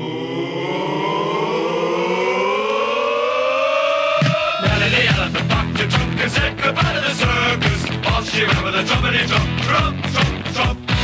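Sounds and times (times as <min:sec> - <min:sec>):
siren-like rising tone: 0:00.0 - 0:04.6.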